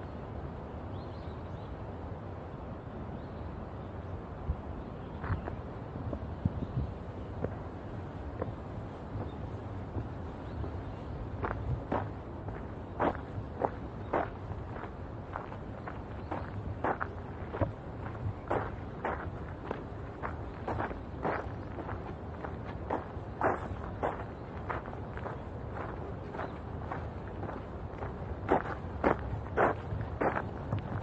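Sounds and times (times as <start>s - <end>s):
footsteps on garden path: 5.2s - 31.0s.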